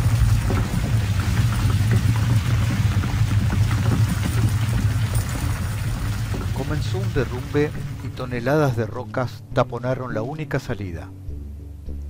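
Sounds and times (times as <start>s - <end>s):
falling stones clattering: 0.0s - 8.7s
deep rumble: 0.0s - 9.0s.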